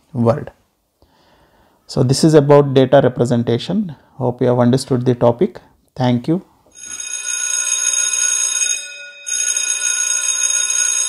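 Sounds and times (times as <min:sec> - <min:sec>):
bell-like ringing: 0:06.8 - 0:11.0.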